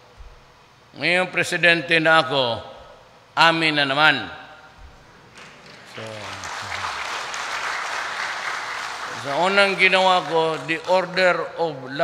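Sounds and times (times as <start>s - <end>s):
audience applauding: 5.3s - 11.4s.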